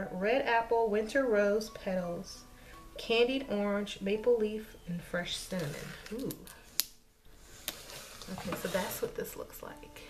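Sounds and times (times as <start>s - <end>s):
plastic bottle handled: 7.6s - 9.2s.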